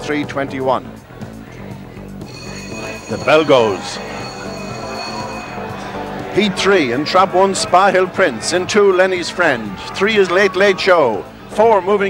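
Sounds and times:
bell ringing: 2.2s - 8.3s.

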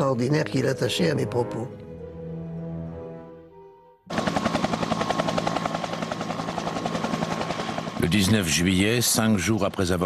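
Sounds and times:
music: 0.0s - 6.8s
helicopter rotor chopping: 4.1s - 10.0s.

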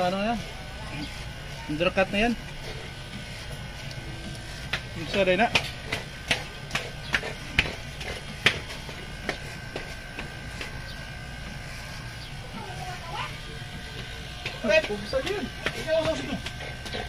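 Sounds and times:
electric hair clipper humming: 0.0s - 17.0s.

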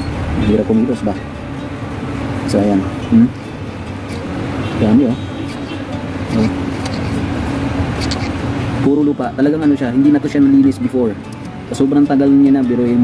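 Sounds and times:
constant hum: 0.3s - 8.9s.

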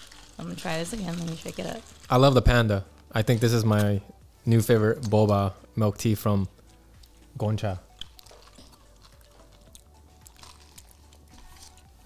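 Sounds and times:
chewing tapioca pearls: 0.0s - 2.2s, 7.8s - 12.0s
quiet background music: 0.0s - 12.0s.

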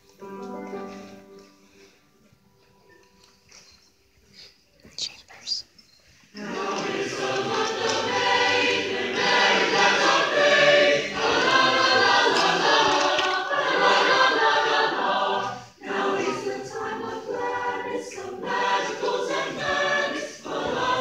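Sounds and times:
choir singing sustained chords: 6.4s - 21.0s.

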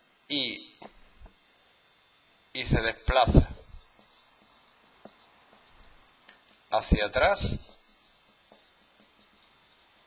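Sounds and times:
marker scratching on whiteboard: 3.1s - 10.0s.

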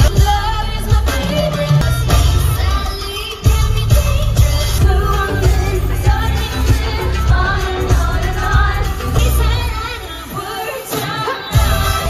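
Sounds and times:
heavy bass line and beat: 0.0s - 9.7s, 11.6s - 12.0s
woman singing into microphone: 0.0s - 12.0s.

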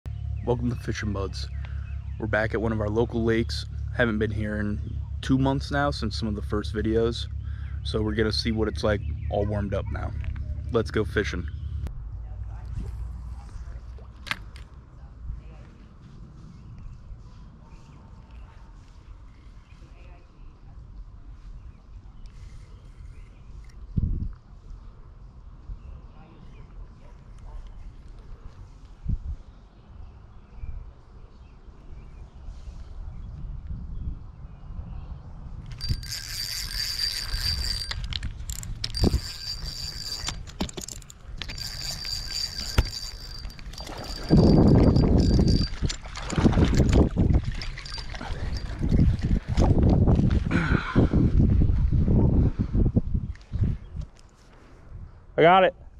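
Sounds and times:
wind buffeting microphone: 15.1s - 19.8s, 20.5s - 26.0s, 27.8s - 30.9s, 32.2s - 54.2s
sharp reel clicks: 35.7s - 45.6s
fishing reel gears whirring: 35.7s - 49.4s.

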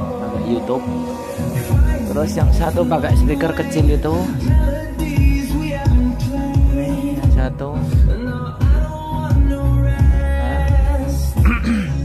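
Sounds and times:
person singing: 0.0s - 12.0s
deep bass beat: 1.5s - 12.0s.

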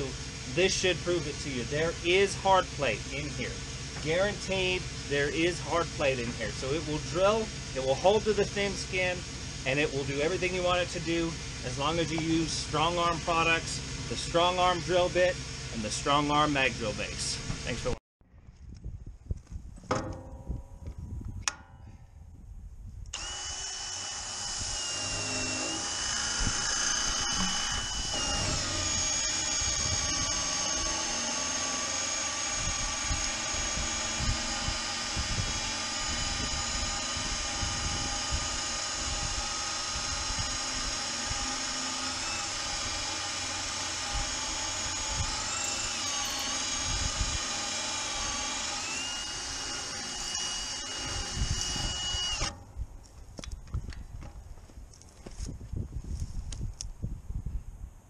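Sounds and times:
drill boring into steel: 0.0s - 18.0s, 23.2s - 52.6s.

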